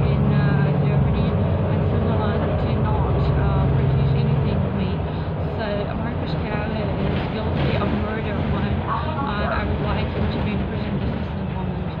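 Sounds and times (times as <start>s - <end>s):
vehicle cabin rumble: 0.0s - 12.0s
woman talking: 0.0s - 12.0s.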